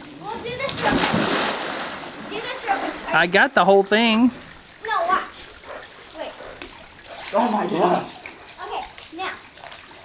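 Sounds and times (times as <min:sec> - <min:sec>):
loud water splash: 0:00.6 - 0:03.1.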